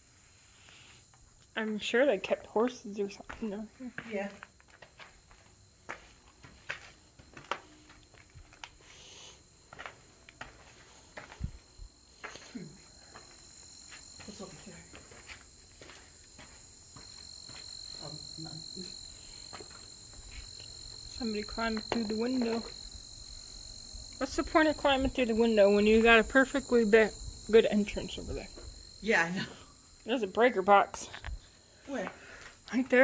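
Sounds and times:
high-pitched insect chorus: 0.0 - 33.0
footsteps on barn floor: 3.2 - 8.9, 9.7 - 18.2, 19.4 - 22.8.

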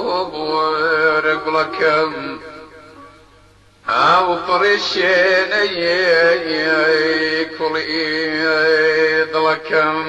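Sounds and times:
man singing folk song: 0.0 - 3.2, 3.9 - 10.0.

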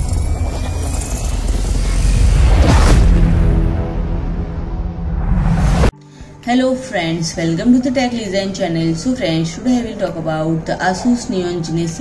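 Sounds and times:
deep rumble: 0.0 - 5.9.

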